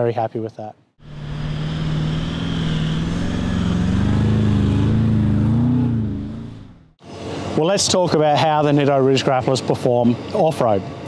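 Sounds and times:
car engine revving: 0:01.0 - 0:07.0.

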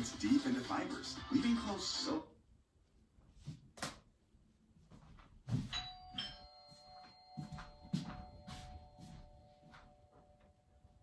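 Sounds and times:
two-note chime: 0:05.7 - 0:11.0.

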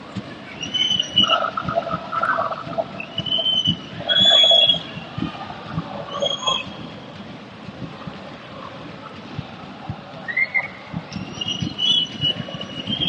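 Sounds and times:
stadium crowd shouting: 0:03.4 - 0:06.9.

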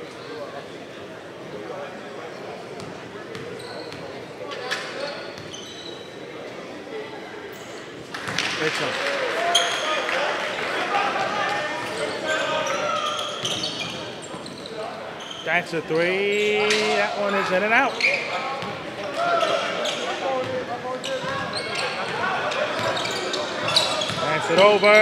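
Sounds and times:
sneakers squeaking: 0:02.8 - 0:06.3, 0:09.4 - 0:10.1, 0:11.4 - 0:24.9.

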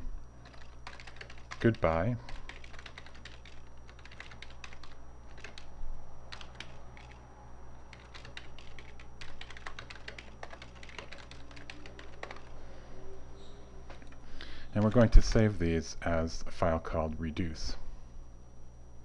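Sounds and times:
keyboard typing: 0:00.4 - 0:05.7, 0:06.3 - 0:07.2, 0:07.9 - 0:12.6, 0:14.8 - 0:15.2.

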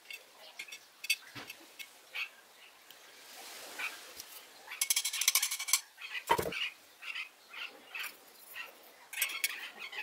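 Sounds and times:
metal parts clicking: 0:04.8 - 0:05.8, 0:09.2 - 0:09.6.

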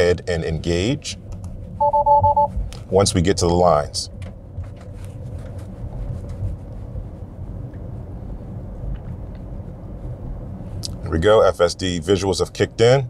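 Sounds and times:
road and tyre rumble: 0:00.0 - 0:13.0.

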